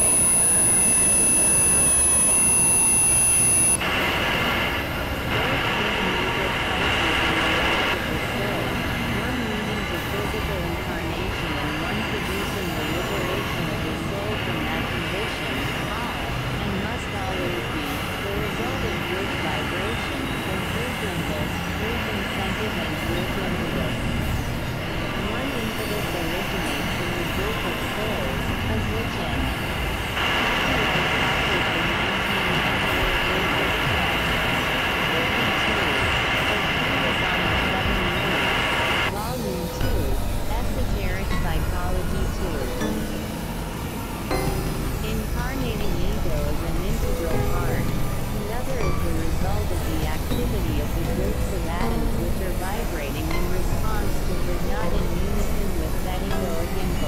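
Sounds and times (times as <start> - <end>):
high synthesizer drone: 0.0 - 57.0.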